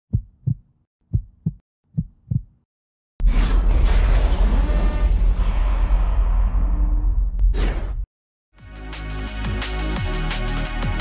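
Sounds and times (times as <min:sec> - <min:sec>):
heartbeat thumps: 0:00.1 - 0:02.7.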